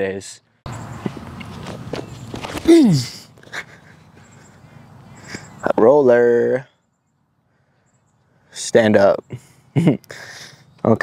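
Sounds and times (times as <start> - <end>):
footsteps on grass: 0.9 - 2.7
man grunting: 2.6 - 3.3.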